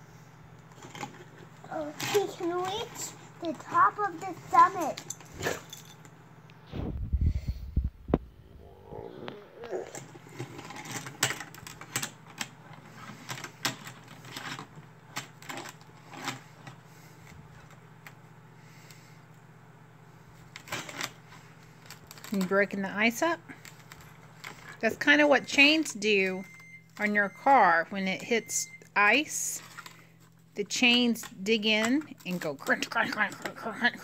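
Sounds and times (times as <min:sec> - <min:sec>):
low rumbling thump: 0:06.7 - 0:08.6.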